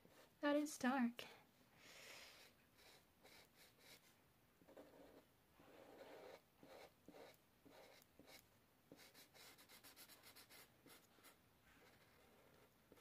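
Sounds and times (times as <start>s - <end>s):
marker nib rubbing on paper: 2.2s - 4.1s, 4.7s - 13.0s.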